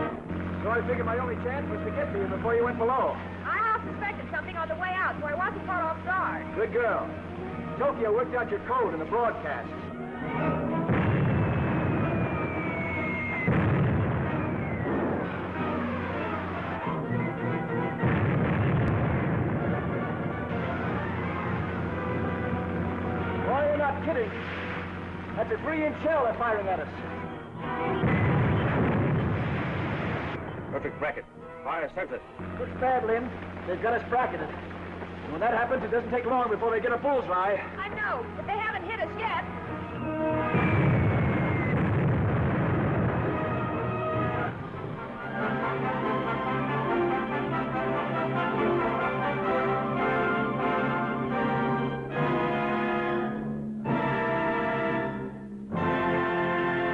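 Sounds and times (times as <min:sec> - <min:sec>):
dramatic film score: 0:00.0 - 0:56.9
naval gun blast rumbling: 0:10.1 - 0:30.8, 0:32.4 - 0:36.7, 0:37.7 - 0:47.8
shell explosion boom: 0:10.8 - 0:16.6, 0:18.0 - 0:22.2, 0:27.8 - 0:30.4, 0:40.4 - 0:44.6.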